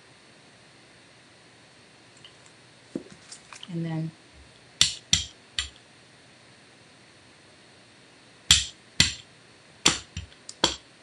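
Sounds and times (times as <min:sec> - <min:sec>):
craft tools knocking on tabletop: 0:09.9 - 0:10.8.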